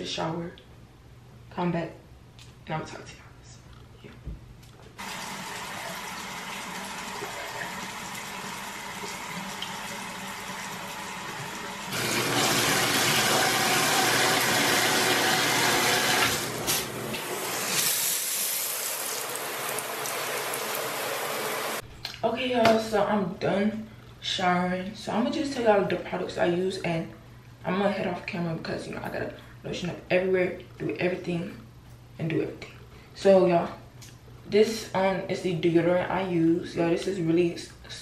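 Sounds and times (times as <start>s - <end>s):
water running into tub: 5.0s - 21.8s.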